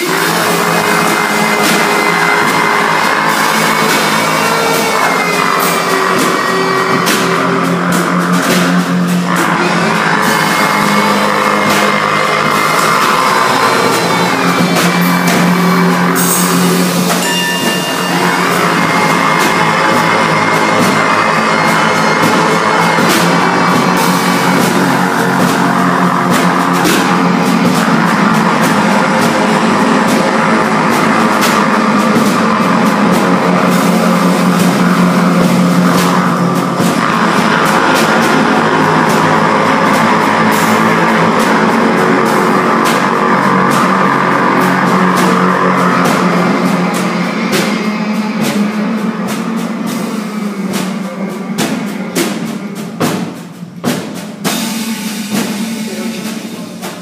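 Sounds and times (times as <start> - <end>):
trumpet long held notes: 0.0 - 53.6
drum kit: 0.0 - 57.0.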